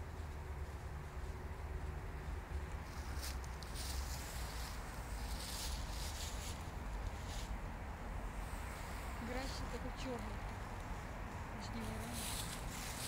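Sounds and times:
low steady rumble: 0.0s - 13.0s
dry leaves rustling and crunching: 2.8s - 7.6s, 11.7s - 13.0s.

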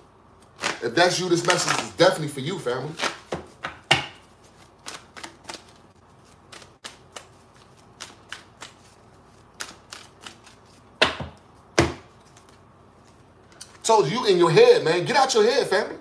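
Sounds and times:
cards being shuffled: 0.3s - 2.0s, 2.9s - 13.8s.

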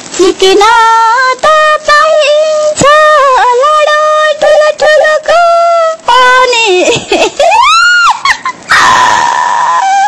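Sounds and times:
loud harsh scream: 7.6s - 10.0s
short falling cries: 7.6s - 10.0s.

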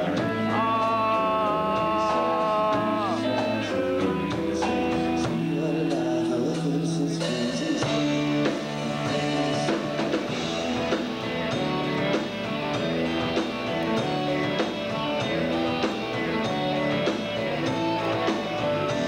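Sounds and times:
rock band playing live: 0.0s - 19.0s.

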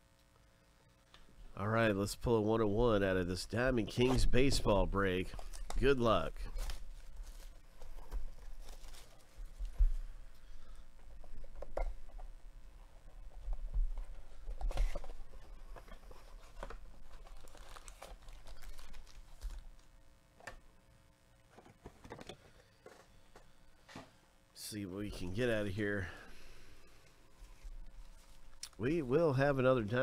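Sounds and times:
plastic wrap crinkling and tearing: 5.2s - 9.7s, 16.1s - 20.0s
cardboard rustling: 5.5s - 10.1s, 13.3s - 19.9s.

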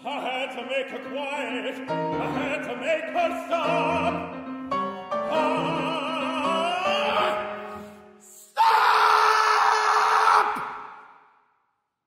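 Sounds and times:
male opera singer crying out: 8.4s - 10.9s.

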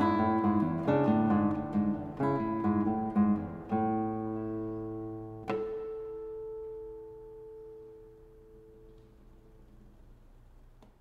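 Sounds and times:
classical guitar chord ringing: 0.0s - 10.3s.

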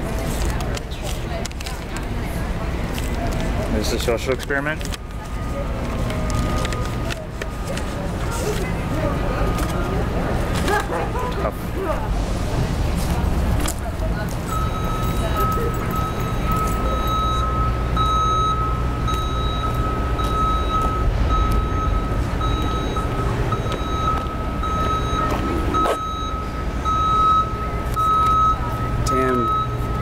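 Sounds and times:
low engine rumble: 0.0s - 30.0s
reversing alarm beeping: 14.4s - 30.0s.

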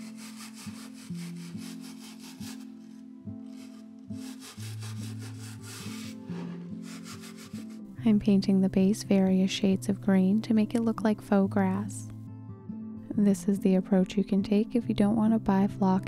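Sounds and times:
toothbrush scrubbing: 0.0s - 2.7s, 3.5s - 7.8s.

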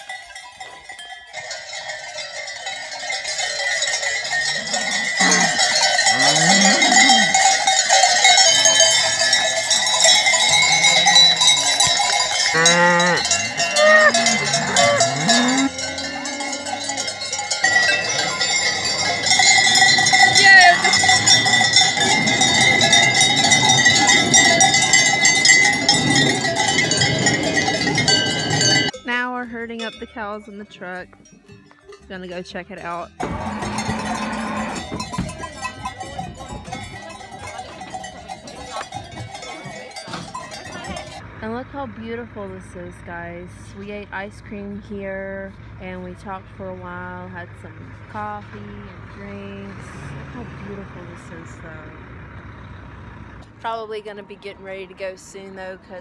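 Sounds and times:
cowbells clanging: 0.0s - 56.0s.

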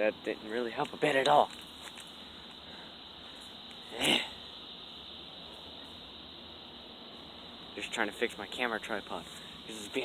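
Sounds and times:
crickets chirping: 0.0s - 10.0s
person grunting: 3.9s - 4.4s.

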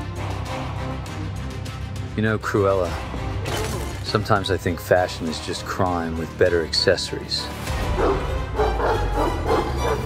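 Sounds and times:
trailer music with low rumble: 0.0s - 10.0s
dog barking: 8.0s - 10.0s.

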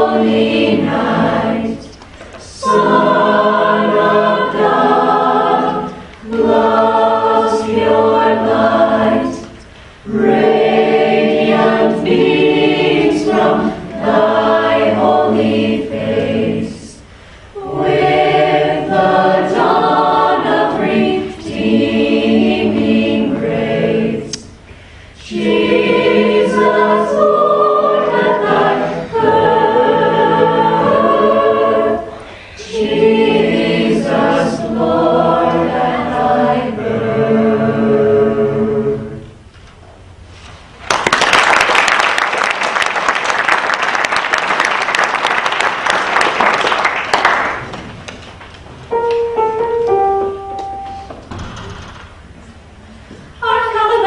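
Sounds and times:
a cappella group singing: 0.0s - 39.5s.

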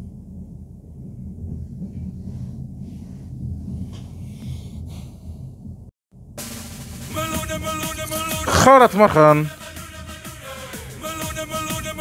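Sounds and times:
train carriage rumble: 0.0s - 5.9s
music: 6.4s - 12.0s.

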